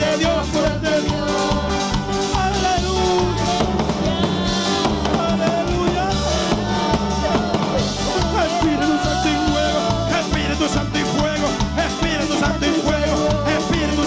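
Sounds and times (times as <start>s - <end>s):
live worship band music: 0.0s - 14.0s
man singing into microphone: 0.0s - 14.0s.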